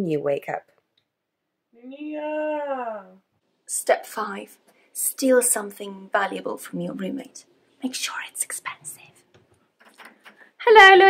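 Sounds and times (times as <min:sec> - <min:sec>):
woman whispering: 0:07.8 - 0:09.2.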